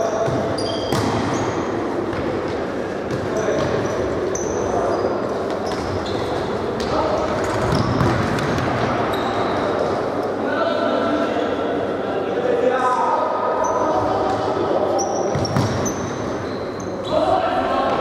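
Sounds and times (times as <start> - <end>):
shoes squeaking on floor: 0.0 - 1.8, 3.2 - 8.2, 9.0 - 9.8, 15.0 - 17.3.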